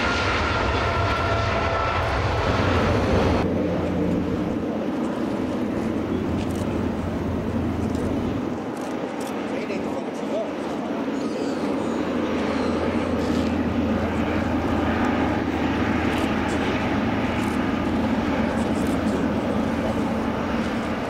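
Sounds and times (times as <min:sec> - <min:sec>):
airliner engines running: 0:00.0 - 0:21.0.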